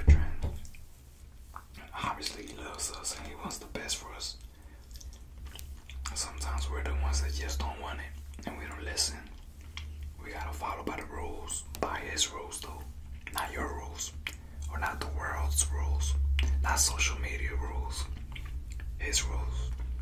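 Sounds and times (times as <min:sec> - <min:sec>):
man whispering: 0:00.0 - 0:00.6, 0:01.6 - 0:20.0
steady low hum: 0:00.0 - 0:20.0.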